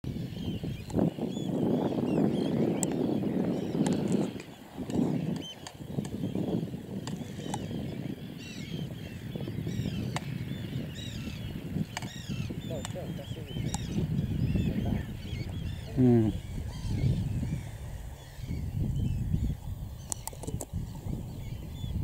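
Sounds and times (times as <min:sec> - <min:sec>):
gusting low wind rush: 0:00.0 - 0:22.0
flock of wader birds calling: 0:00.1 - 0:22.0.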